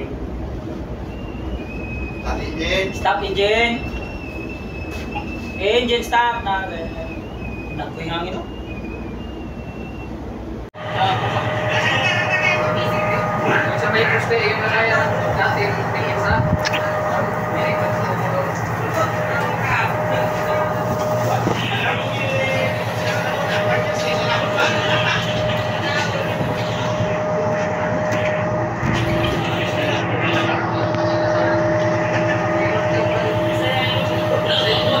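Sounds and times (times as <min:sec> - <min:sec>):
voices: 0:00.0 - 0:10.1, 0:10.8 - 0:35.0
high steady whine: 0:00.0 - 0:35.0
sea noise: 0:00.0 - 0:35.0
ship machinery drone: 0:00.0 - 0:35.0
rushing wind: 0:08.5 - 0:35.0
people laughing: 0:23.0 - 0:27.8, 0:29.2 - 0:33.4.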